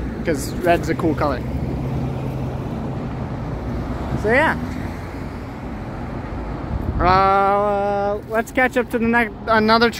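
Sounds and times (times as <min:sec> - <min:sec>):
vehicle engines rumbling: 0:00.0 - 0:09.9.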